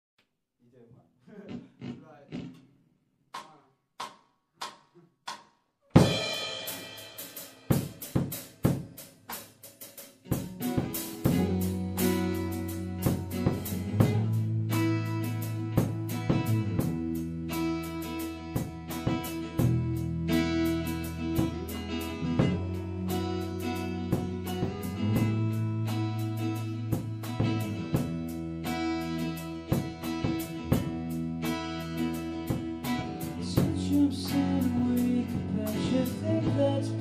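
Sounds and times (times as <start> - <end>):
person speaking: 0.6 - 2.6
drum kit playing: 3.4 - 37.0
guitar chords: 6.0 - 37.0.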